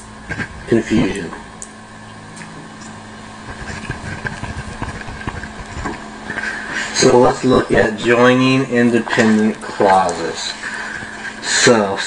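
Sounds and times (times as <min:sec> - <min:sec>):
steady low hum: 0:00.0 - 0:12.0
pen scratching on paper: 0:03.5 - 0:06.4.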